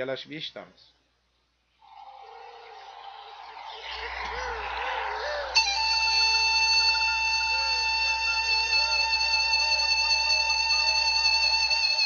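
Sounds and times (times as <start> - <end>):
held tone: 1.8 - 12.0
wavering melody line: 1.8 - 12.0.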